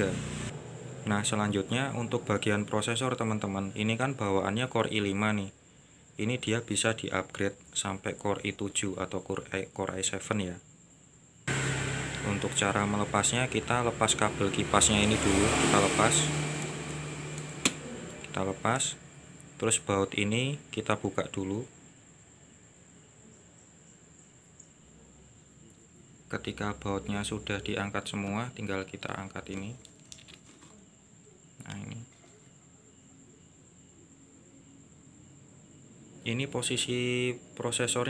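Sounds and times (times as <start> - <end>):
steady low hum with hiss: 0.0 - 38.0
rustling: 29.8 - 30.8.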